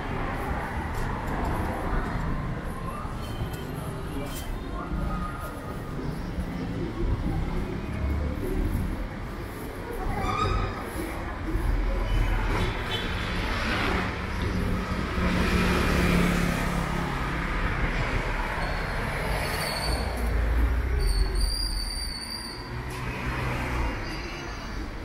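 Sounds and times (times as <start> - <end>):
cars and scooters passing: 0.0 - 25.0.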